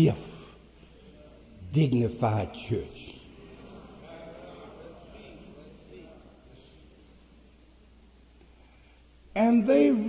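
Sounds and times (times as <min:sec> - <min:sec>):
faint congregation voices: 0:00.0 - 0:10.0
low recording hum: 0:00.0 - 0:10.0.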